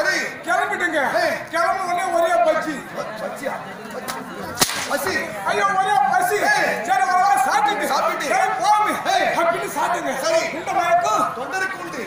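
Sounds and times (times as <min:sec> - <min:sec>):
men's voices: 0:00.0 - 0:12.0
faint smack: 0:04.6 - 0:04.9
sharp crack of a blow: 0:04.6 - 0:05.0.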